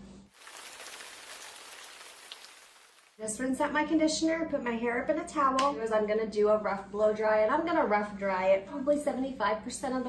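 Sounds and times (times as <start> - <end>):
shower spray running: 0.3 - 3.2.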